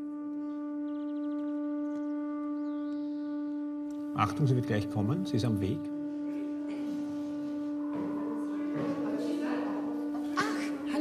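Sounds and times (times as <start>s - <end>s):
low drone note: 0.0s - 11.0s.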